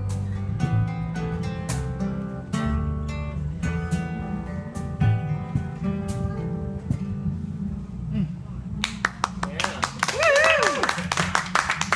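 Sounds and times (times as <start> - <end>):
audience clapping: 8.8 - 11.9.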